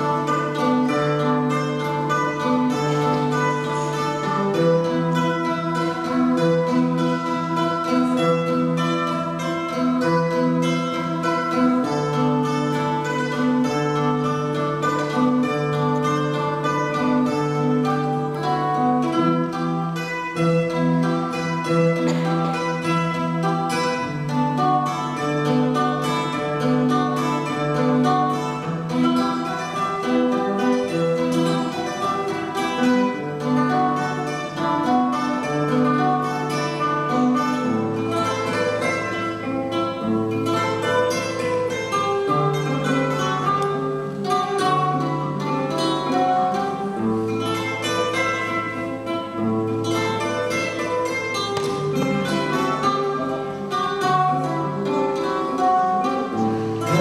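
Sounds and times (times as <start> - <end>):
guitars and mandolins playing: 0.0 - 57.0.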